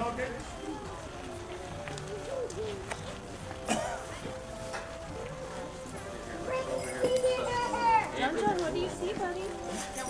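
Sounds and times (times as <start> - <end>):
carousel music: 0.0 - 10.0.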